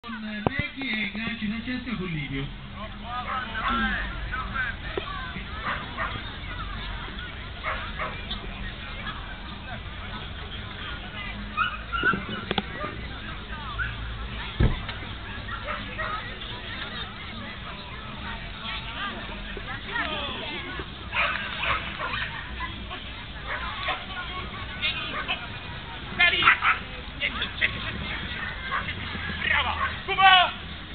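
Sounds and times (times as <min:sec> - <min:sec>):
murmur of crowd voices: 0:00.0 - 0:30.9
dog barking: 0:03.3 - 0:03.9, 0:05.6 - 0:06.2, 0:07.6 - 0:08.2, 0:11.6 - 0:13.0, 0:15.3 - 0:16.2, 0:21.1 - 0:22.7, 0:26.4 - 0:26.8, 0:29.8 - 0:30.0
dog barking in high yips: 0:11.6 - 0:12.9.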